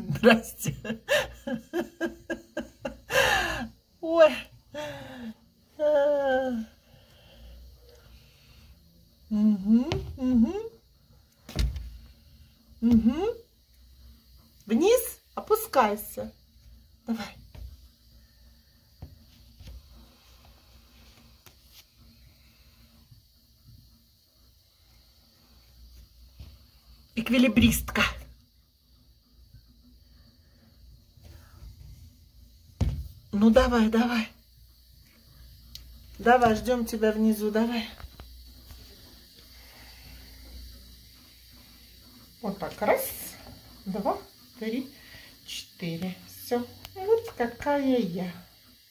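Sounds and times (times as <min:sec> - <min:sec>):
person laughing: 0:00.6 - 0:03.7.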